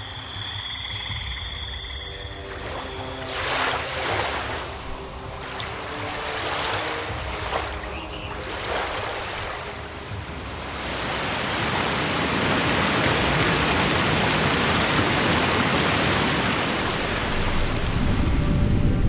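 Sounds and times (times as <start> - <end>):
rushing water: 0.0 - 19.0
low rumble: 17.1 - 19.0.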